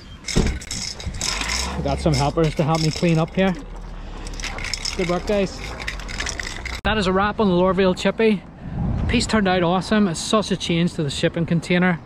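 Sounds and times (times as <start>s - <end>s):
metal spray cans clinking: 0.0s - 6.8s
wind rumbling on microphone: 4.6s - 10.0s.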